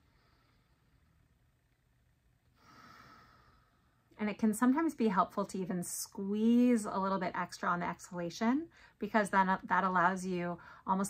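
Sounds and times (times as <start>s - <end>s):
woman breathing deeply: 0.0s - 1.3s, 2.5s - 4.1s, 10.6s - 10.9s.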